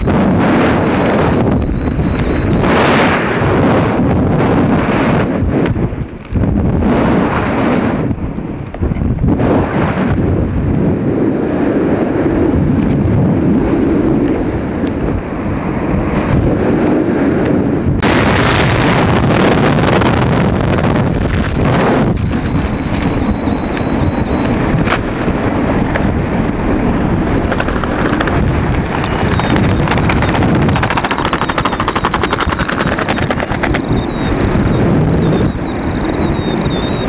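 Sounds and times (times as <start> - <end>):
wind buffeting microphone: 0.0 - 37.0
rapid fluttering rattle: 27.1 - 34.2.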